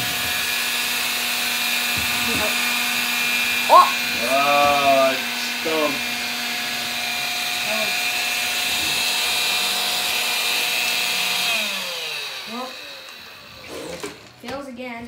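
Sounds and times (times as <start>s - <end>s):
stick vacuum motor whine: 0.0s - 14.4s.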